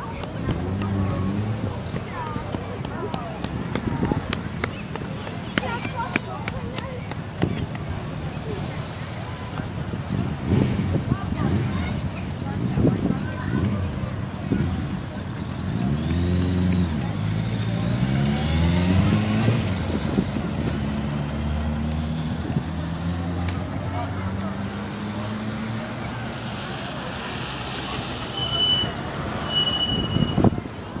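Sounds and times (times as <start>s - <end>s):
vehicle engine accelerating: 0.3s - 2.0s, 13.4s - 29.6s
brief high tones: 28.3s - 30.5s.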